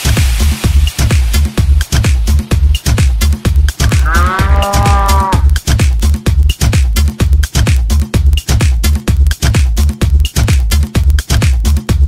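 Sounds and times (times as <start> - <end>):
electronic dance music: 0.0 - 12.0
cow mooing: 3.8 - 5.5.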